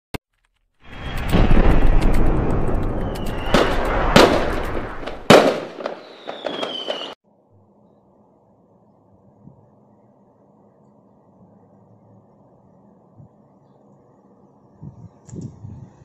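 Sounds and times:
descending firework whistle: 0.8s - 7.2s
firecrackers crackling: 0.8s - 7.2s
fireworks bangs: 0.8s - 7.2s.

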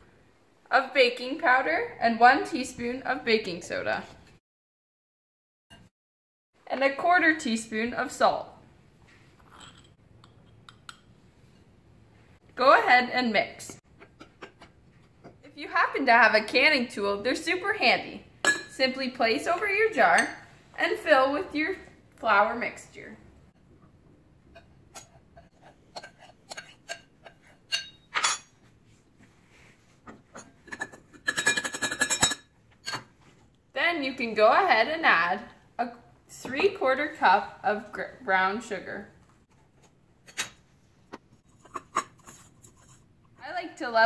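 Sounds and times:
metal spoon clinking on glass: 27.7s - 28.5s, 31.3s - 33.0s
metal spoon scraping salt cellar: 41.4s - 43.1s.

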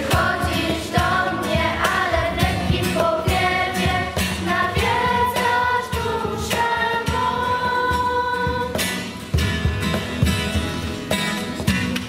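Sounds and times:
girls choir singing: 0.0s - 8.9s.

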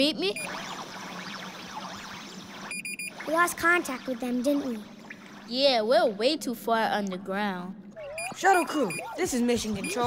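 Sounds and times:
high electronic beep: 0.3s - 1.8s, 2.7s - 3.2s, 8.1s - 9.2s.

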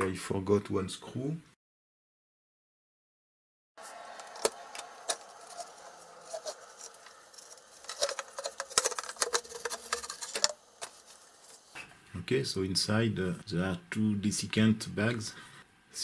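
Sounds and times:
metal clinks and scrapes: 4.4s - 11.8s.

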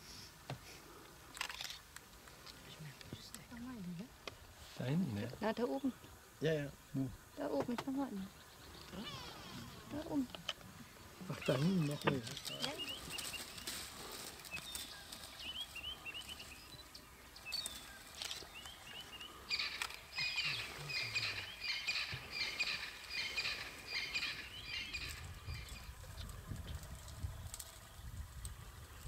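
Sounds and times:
wild birds chirping: 0.1s - 29.0s.

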